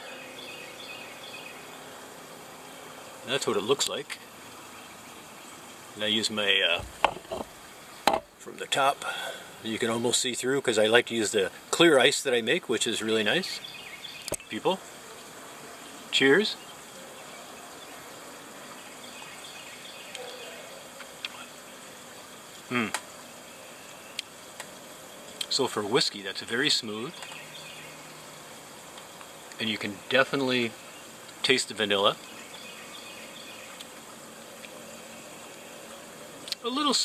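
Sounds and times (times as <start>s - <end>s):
faint insect buzzing: 0.0s - 37.0s
faint outdoor background hiss: 0.0s - 37.0s
small ticks: 14.2s - 15.4s, 22.2s - 23.2s, 24.1s - 25.6s, 27.1s - 28.2s, 28.8s - 29.7s, 33.5s - 36.6s.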